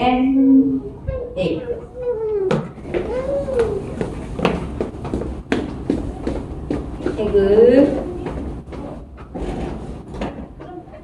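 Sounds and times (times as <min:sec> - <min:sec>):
footsteps on wooden floor: 0:02.5 - 0:10.6.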